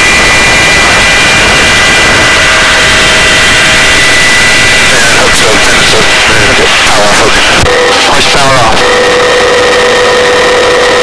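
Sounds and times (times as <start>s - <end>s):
helicopter rotor and engine noise: 0.0s - 11.0s.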